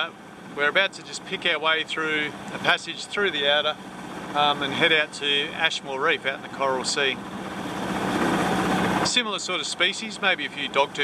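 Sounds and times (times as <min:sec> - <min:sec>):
water rushing along boat hull: 0:00.0 - 0:11.0.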